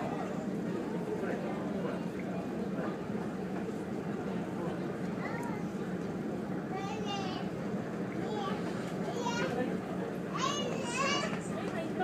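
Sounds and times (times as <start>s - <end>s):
children's voices: 5.1s - 5.9s, 6.6s - 7.5s, 8.1s - 9.7s, 10.3s - 12.0s.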